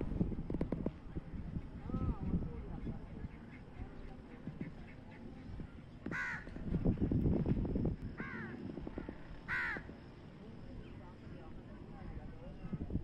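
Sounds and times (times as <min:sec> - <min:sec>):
crow cawing: 0:06.1 - 0:06.5, 0:08.2 - 0:08.5, 0:09.5 - 0:09.9.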